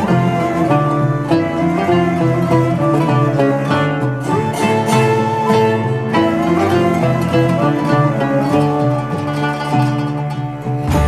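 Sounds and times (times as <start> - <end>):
plucked qanun melody: 0.0 - 11.0.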